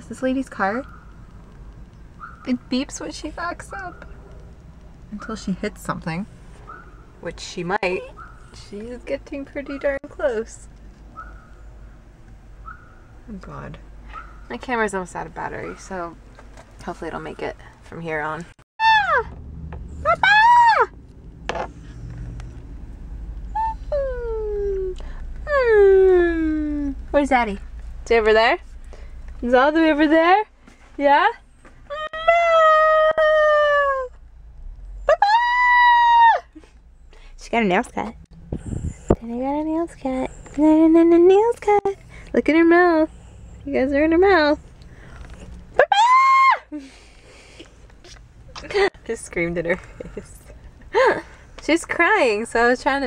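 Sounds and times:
woman screaming: 18.8 - 19.3, 20.1 - 20.9, 31.9 - 34.1, 35.1 - 36.6, 45.8 - 46.8
small dog whining: 23.5 - 27.0.

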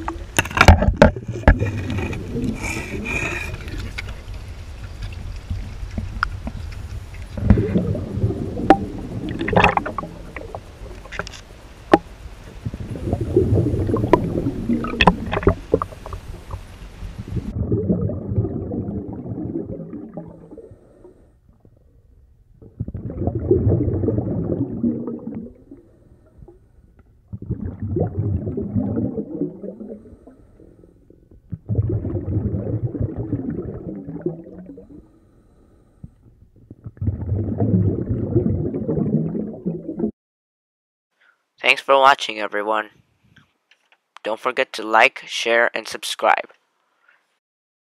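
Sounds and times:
sharp clicks and pops: 0.0 - 2.6, 8.6 - 12.1, 13.9 - 16.8
muffled underwater churning: 0.0 - 40.1.

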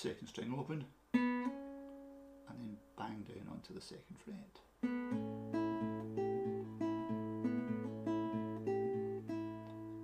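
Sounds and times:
fingerstyle acoustic guitar blues: 1.1 - 2.2, 4.8 - 10.0.

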